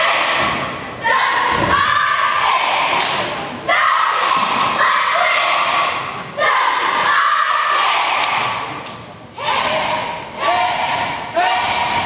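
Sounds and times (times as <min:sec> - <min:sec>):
cheerleaders shouting a cheer: 0:00.0 - 0:12.0.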